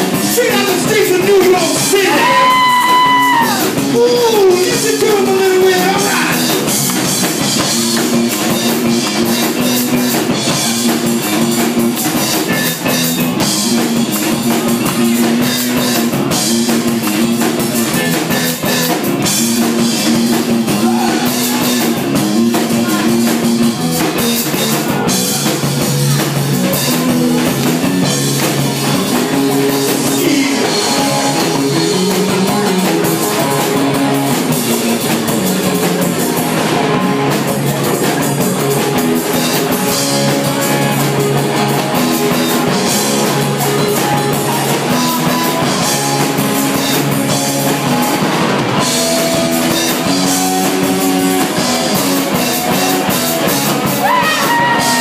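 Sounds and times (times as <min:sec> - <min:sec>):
drum kit beat: 0:00.0 - 0:55.0
electric bass riff: 0:00.0 - 0:55.0
live rock band: 0:00.0 - 0:55.0.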